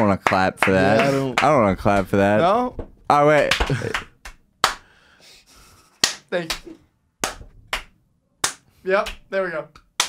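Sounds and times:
hand claps: 0:00.0 - 0:04.9, 0:05.8 - 0:10.0.

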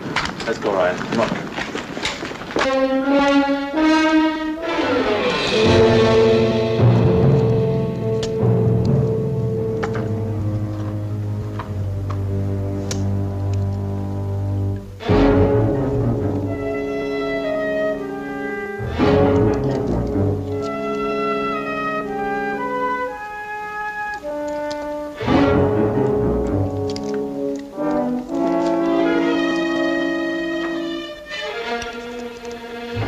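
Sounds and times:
orchestral brass and string chords: 0:02.6 - 0:33.0
loud sudden accented orchestral chords: 0:02.7 - 0:11.9, 0:12.5 - 0:23.1, 0:25.1 - 0:26.8.

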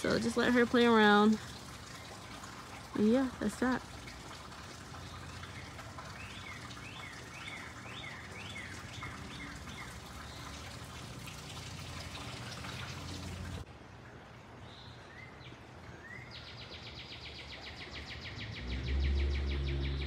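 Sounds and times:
bird chirping: 0:14.7 - 0:20.0.

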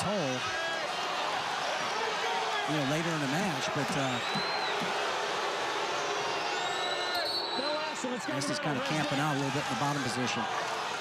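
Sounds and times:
arena crowd roar: 0:00.0 - 0:11.0.

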